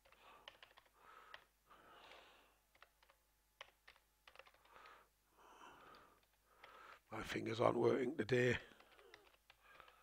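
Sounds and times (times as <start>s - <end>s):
typing on keyboard: 0.0s - 1.5s, 2.1s - 5.0s, 5.8s - 6.9s, 8.6s - 10.0s.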